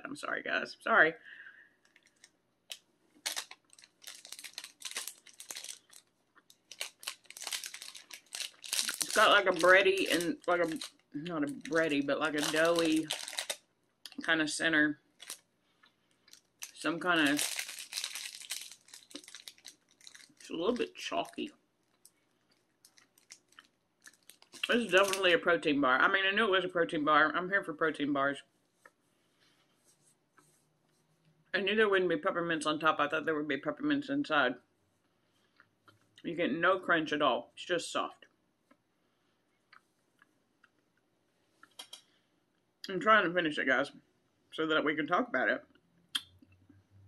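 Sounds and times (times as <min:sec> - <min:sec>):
plastic wrapper crinkling: 0:01.8 - 0:14.3, 0:15.1 - 0:15.5, 0:16.1 - 0:25.4
soft chewing: 0:21.8 - 0:24.8.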